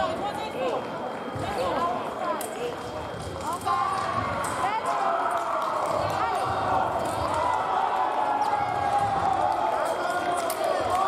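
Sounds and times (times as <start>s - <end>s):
many voices echoing in a hall: 0.0s - 11.0s.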